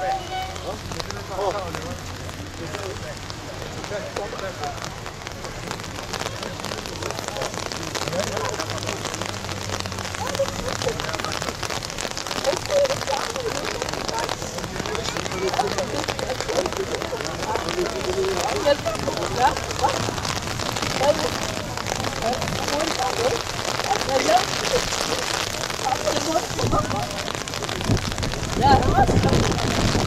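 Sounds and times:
low murmured voices: 0:00.0 - 0:30.0
rain pattering: 0:00.0 - 0:30.0.

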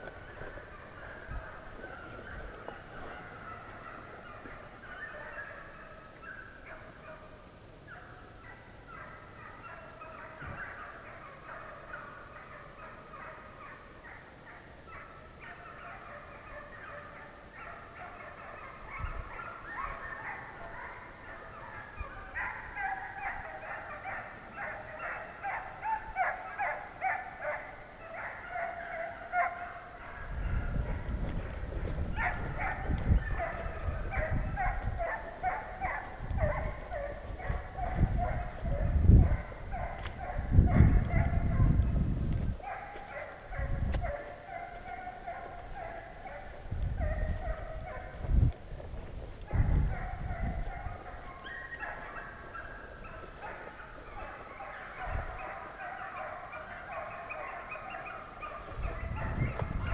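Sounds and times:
hounds baying: 0:00.0 - 0:59.9
low rumbling on microphone: 0:30.2 - 0:35.4, 0:36.1 - 0:42.6, 0:46.5 - 0:51.2, 0:58.6 - 0:59.9.

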